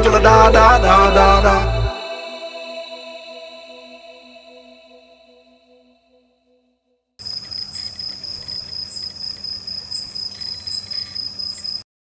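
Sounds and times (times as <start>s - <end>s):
cricket trill: 7.2s - 11.8s
faint sharp chirps: 7.2s - 11.8s.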